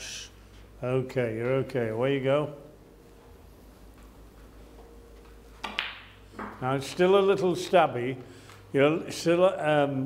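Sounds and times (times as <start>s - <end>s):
low room hum: 0.0s - 10.0s
cue tip striking ball: 5.6s - 6.6s.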